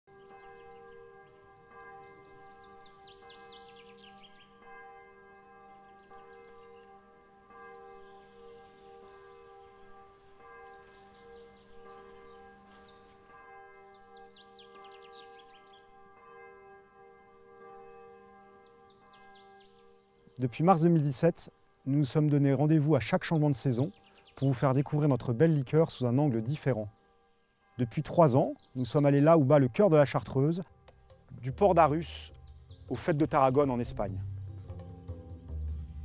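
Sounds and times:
birds chirping: 0:00.1 - 0:16.7, 0:17.4 - 0:36.0
faint church bell ringing: 0:00.1 - 0:35.1.

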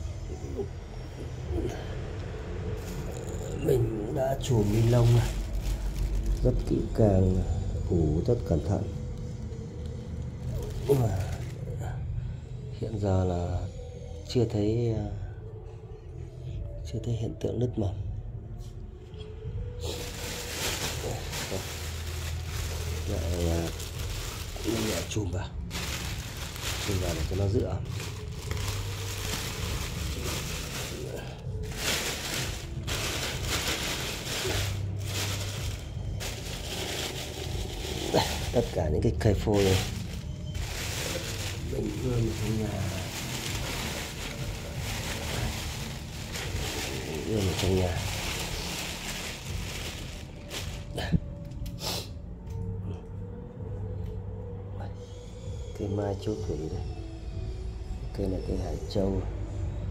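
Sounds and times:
low background rumble: 0:00.0 - 0:14.2, 0:15.1 - 0:54.8
faint constant hum: 0:00.0 - 0:59.9
plastic bag crinkling: 0:04.3 - 0:07.0, 0:10.3 - 0:11.7, 0:19.8 - 0:51.2.

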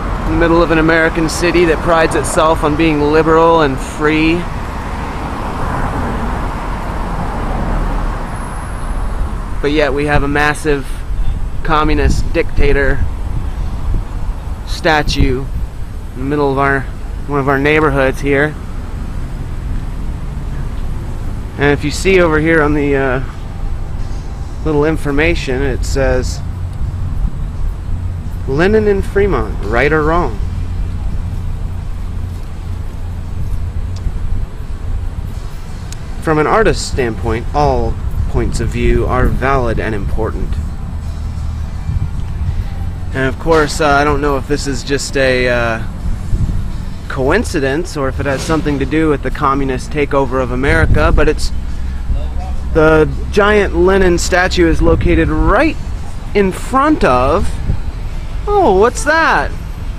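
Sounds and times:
street traffic passing: 0:00.0 - 0:59.9.

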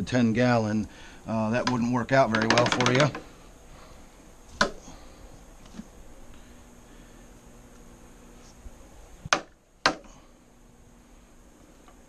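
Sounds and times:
net frame knocking bucket rim: 0:01.6 - 0:03.2.

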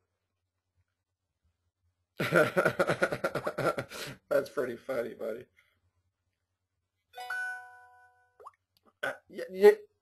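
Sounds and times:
phone text alert chime: 0:07.2 - 0:08.4.

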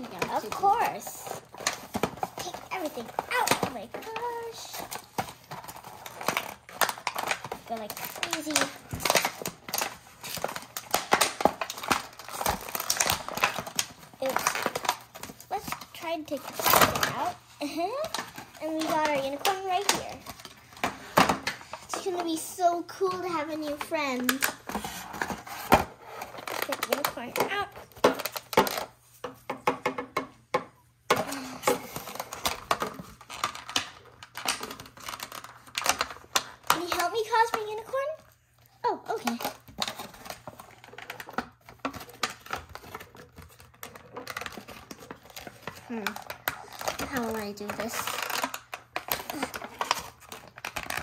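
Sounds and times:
plastic packaging crinkling: 0:00.0 - 0:29.2, 0:31.3 - 0:51.0.

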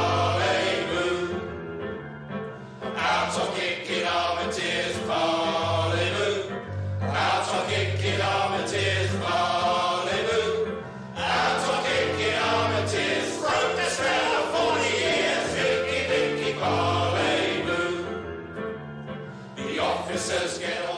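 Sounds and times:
choir singing: 0:00.0 - 0:01.8, 0:02.9 - 0:18.6, 0:19.4 - 0:20.9.

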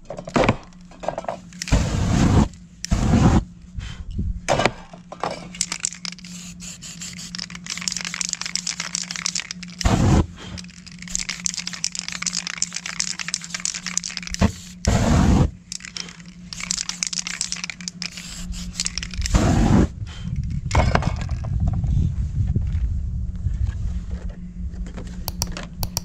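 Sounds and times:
whoosh of ignition: 0:09.8 - 0:10.6, 0:18.6 - 0:20.4.

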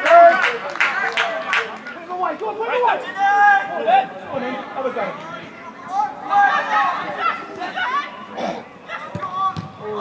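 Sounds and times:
faint chatter: 0:00.0 - 0:10.0.

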